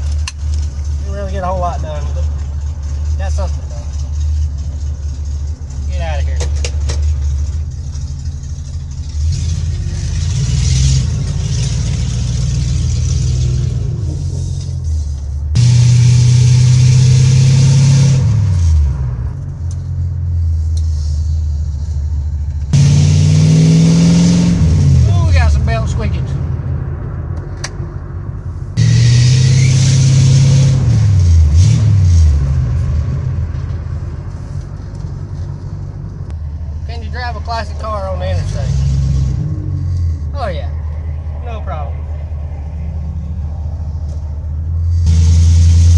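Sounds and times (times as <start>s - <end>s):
car engine from inside cabin: 0.0s - 45.9s
car engine revving: 0.0s - 45.9s.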